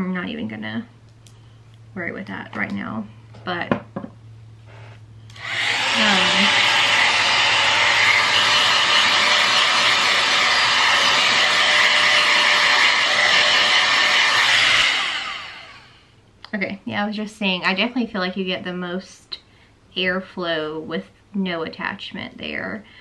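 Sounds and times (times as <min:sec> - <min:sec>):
hot-air styler blowing: 0:04.7 - 0:16.1.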